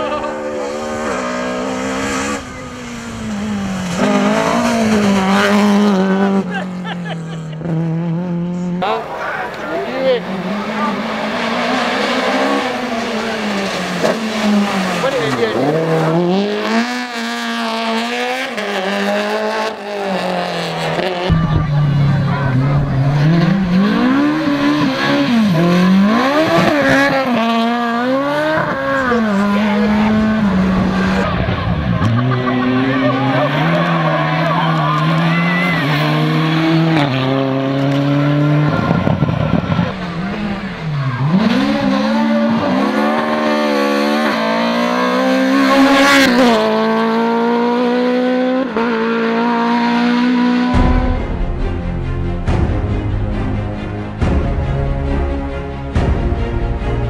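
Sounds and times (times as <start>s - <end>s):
rally car engines revving: 0.0s - 57.0s.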